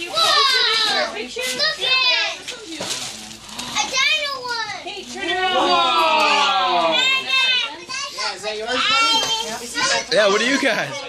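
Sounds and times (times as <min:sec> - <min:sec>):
young children's excited voices: 0:03.8 - 0:11.0.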